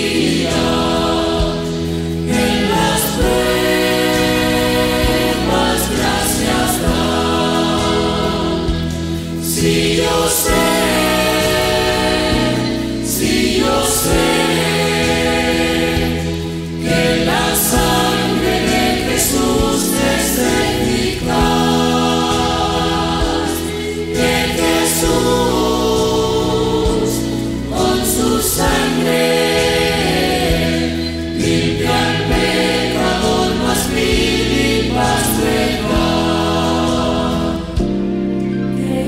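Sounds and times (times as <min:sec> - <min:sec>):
church choir singing a hymn: 0:00.0 - 0:39.0.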